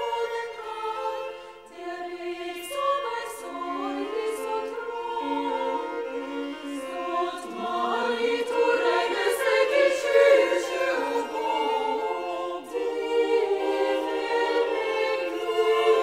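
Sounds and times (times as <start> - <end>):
choir singing sustained chords: 0.0 - 16.0.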